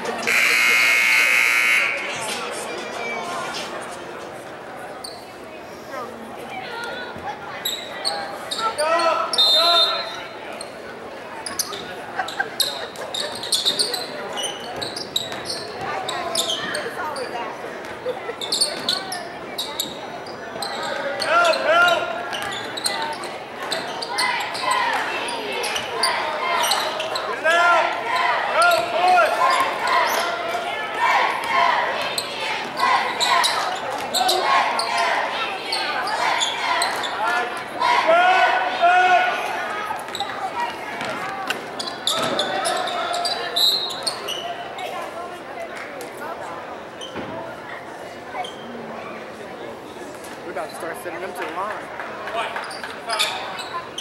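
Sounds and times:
people shouting in a hall: 24.0s - 41.4s.

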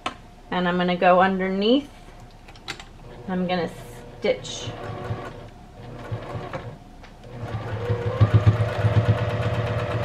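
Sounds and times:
sewing machine stitching: 3.0s - 10.0s.

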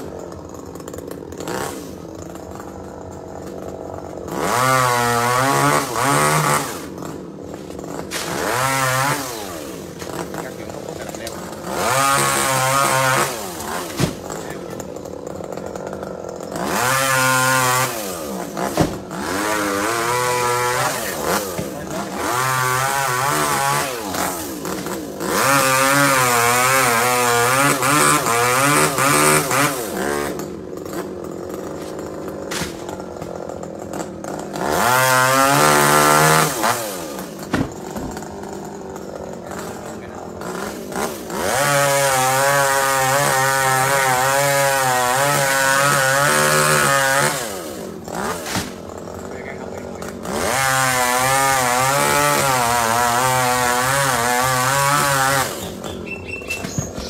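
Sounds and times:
chainsaw revving: 0.0s - 57.0s.

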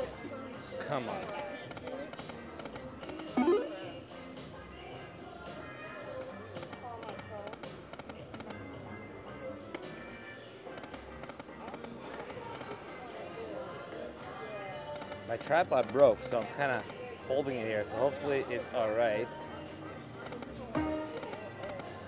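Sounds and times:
slot machine spin sounds and jingles: 3.4s - 3.8s
other slot machines: 3.4s - 3.9s, 20.4s - 22.0s
crowd chatter: 3.4s - 4.0s.

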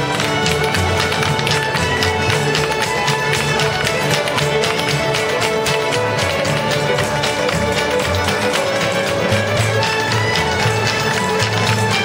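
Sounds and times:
traditional fiddle music: 0.0s - 12.0s.

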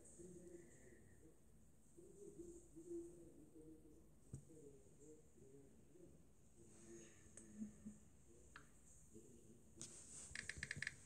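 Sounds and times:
soft keyboard clicks: 9.8s - 11.0s.

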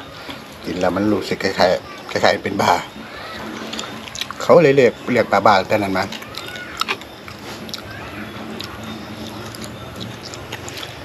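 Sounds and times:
man chewing: 1.9s - 11.0s.

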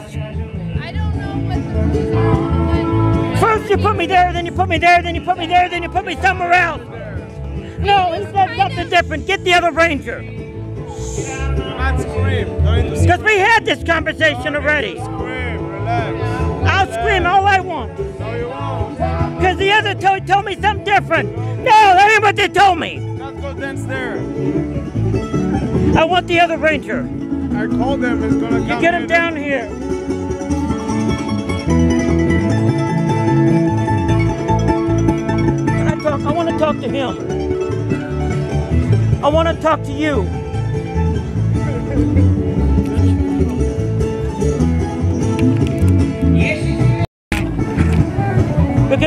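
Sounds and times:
steady bass beat: 0.0s - 23.2s, 23.8s - 49.0s
band playing country music: 0.0s - 49.0s.

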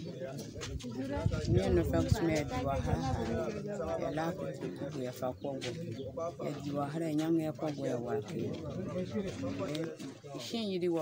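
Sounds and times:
woman speaking: 10.4s - 11.0s.

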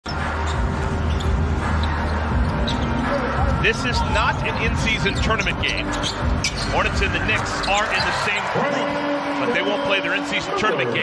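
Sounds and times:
arena crowd noise: 0.0s - 11.0s
music: 0.0s - 11.0s.

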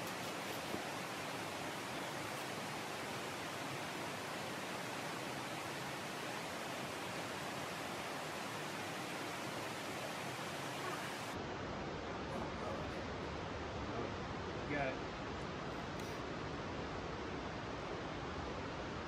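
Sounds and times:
steady background hiss: 0.0s - 19.0s.

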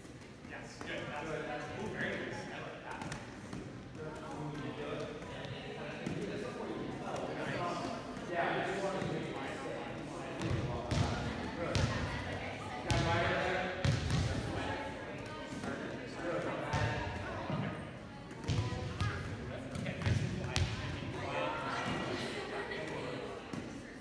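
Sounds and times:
hands slapping volleyballs: 2.1s - 6.3s
girls chattering: 21.1s - 24.0s.

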